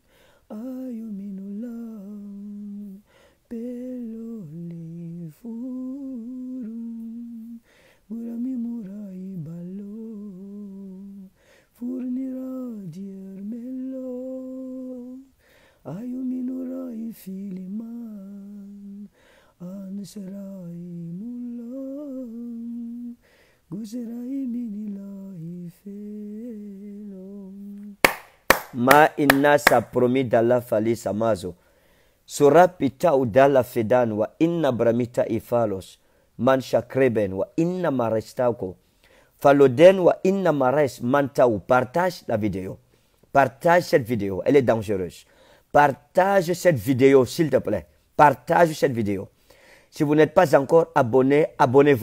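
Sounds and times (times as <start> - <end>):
person humming a slow tune: 15.9 - 28.0.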